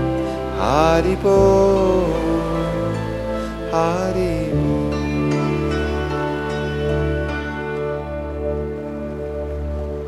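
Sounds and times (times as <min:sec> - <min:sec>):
man singing mantra: 0:00.6 - 0:02.9.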